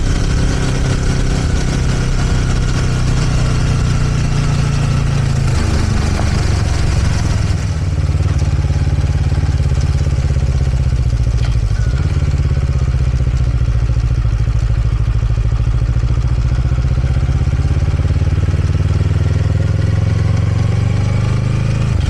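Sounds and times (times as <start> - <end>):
motorcycle engine droning: 0.0 - 22.0.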